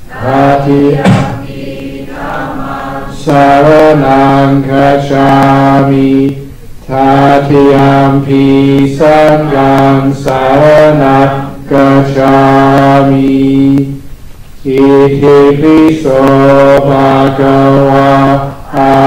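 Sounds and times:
devotional chanting voices: 0.0s - 19.0s.

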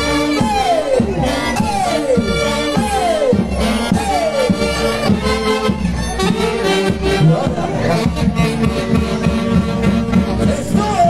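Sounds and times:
dance band music with brass: 0.0s - 11.0s.

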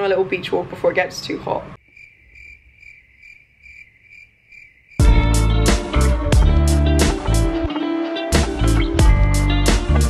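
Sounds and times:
cricket chirping: 1.8s - 5.0s
loud guitar music: 5.0s - 10.0s.

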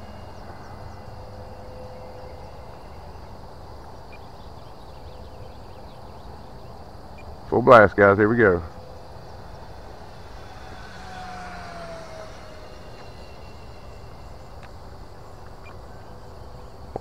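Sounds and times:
model plane motor whine: 0.0s - 7.4s, 8.3s - 17.0s.

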